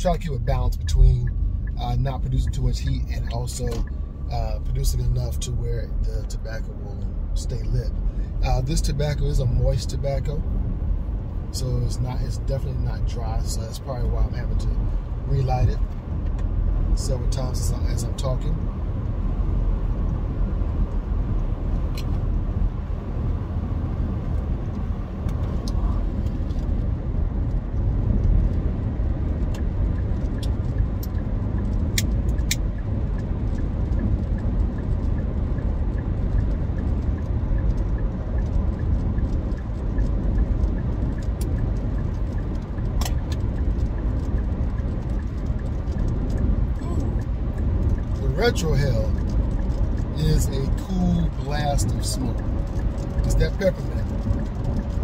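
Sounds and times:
car cabin road and engine rumble: 0:00.0 - 0:55.0.

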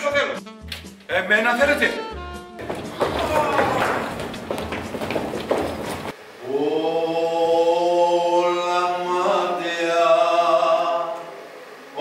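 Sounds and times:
choir singing long notes: 0:06.4 - 0:12.0.

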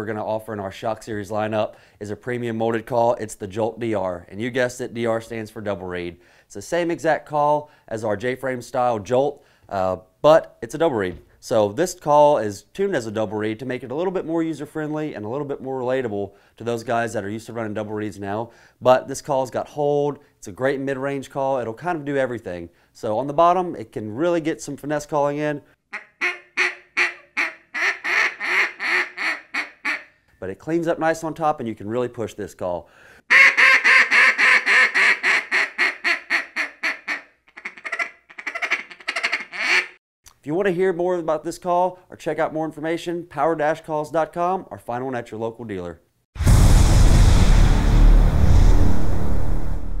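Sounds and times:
duck call quacks: 0:25.9 - 0:30.2, 0:33.3 - 0:40.0
cinematic hit with rumble: 0:46.4 - 0:50.0
whooshing wash: 0:46.4 - 0:50.0.

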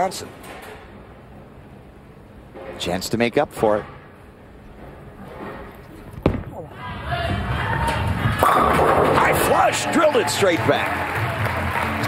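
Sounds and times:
bowling ball thud: 0:05.4 - 0:06.6, 0:07.9 - 0:09.5
crowd noise: 0:06.4 - 0:12.0
bowling ball rolling rumble: 0:07.2 - 0:09.6
bowling pins crashing: 0:07.3 - 0:09.8.

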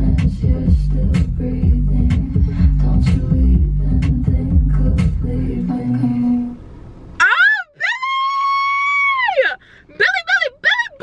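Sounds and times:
woman squealing excitedly: 0:07.2 - 0:11.0
woman yelping: 0:07.2 - 0:11.0.

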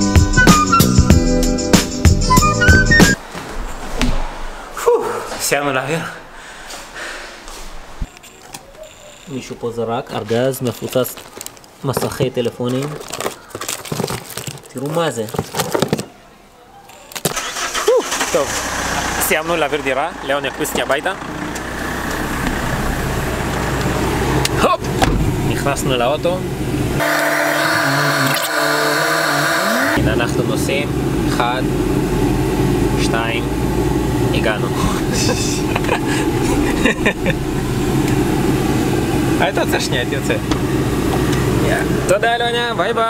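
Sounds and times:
street noise: 0:00.0 - 0:43.0
voice: 0:04.8 - 0:06.2, 0:17.9 - 0:21.2, 0:24.5 - 0:26.5, 0:27.7 - 0:31.7, 0:33.0 - 0:33.5, 0:34.3 - 0:37.3, 0:39.4 - 0:40.5, 0:41.6 - 0:43.0
car engine starting and idling: 0:17.3 - 0:43.0.

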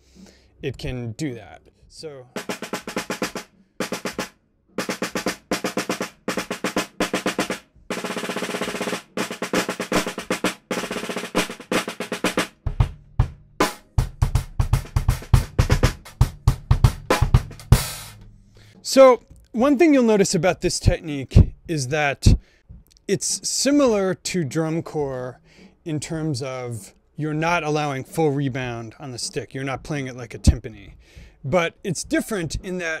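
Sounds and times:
snare drum played with sticks: 0:02.4 - 0:18.3, 0:27.6 - 0:32.8.

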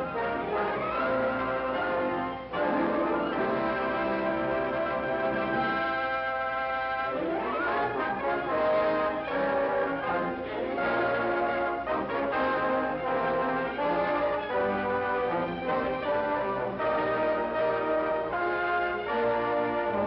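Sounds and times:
orchestral music with brass: 0:00.0 - 0:20.0.

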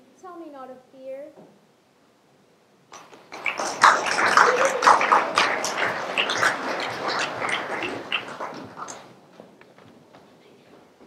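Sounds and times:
audience noise in a hall: 0:02.9 - 0:09.2.

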